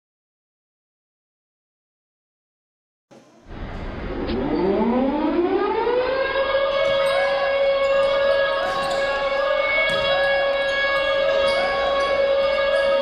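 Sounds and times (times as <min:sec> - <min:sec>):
siren winding up: 0:04.2 - 0:13.0.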